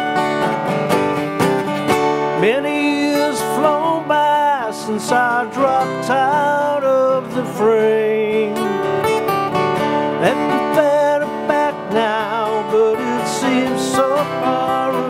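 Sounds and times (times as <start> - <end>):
acoustic guitar strumming chords: 0.0 - 15.0
guitar lead fills with bent notes: 0.0 - 15.0.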